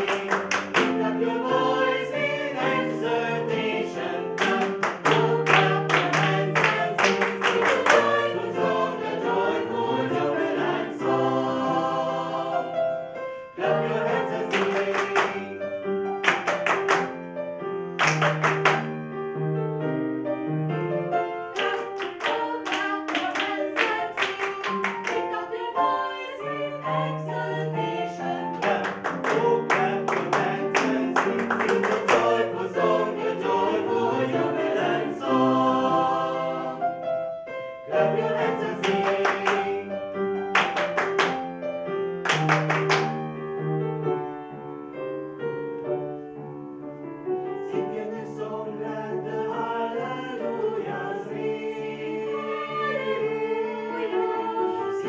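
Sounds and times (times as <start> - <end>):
people clapping a rhythm: 0.0 - 2.9, 3.6 - 9.2, 13.8 - 17.3, 17.9 - 19.0, 21.5 - 25.6, 28.5 - 33.8, 38.2 - 41.6, 42.2 - 43.3
vocal ensemble singing in harmony: 0.0 - 17.1, 21.2 - 41.4, 47.2 - 55.0.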